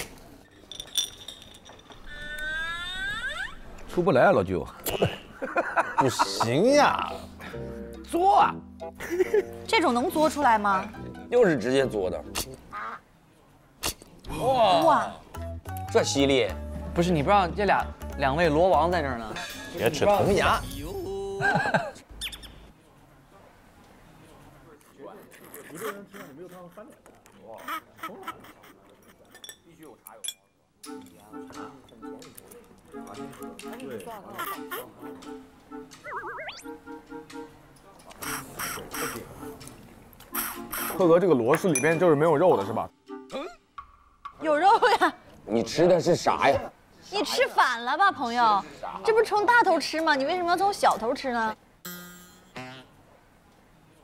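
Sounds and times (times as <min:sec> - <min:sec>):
squeaky sucking noises: 0:02.0 - 0:03.8, 0:38.1 - 0:39.6, 0:40.2 - 0:41.1, 0:51.9 - 0:53.0
voice sounds: 0:20.5 - 0:21.7
whistle-like tone gliding upward: 0:36.0 - 0:36.7.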